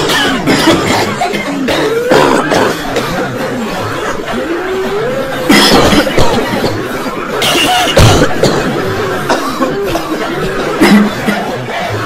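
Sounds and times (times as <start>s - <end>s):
person coughing: 0.0s - 4.7s, 5.5s - 6.8s, 7.4s - 12.0s.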